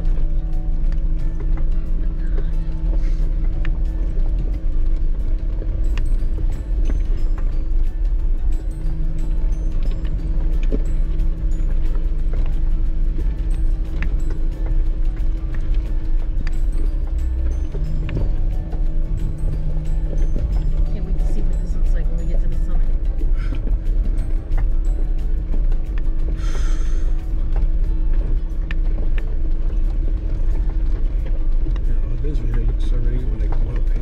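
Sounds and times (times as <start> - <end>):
vehicle engine droning: 0.0 - 34.0.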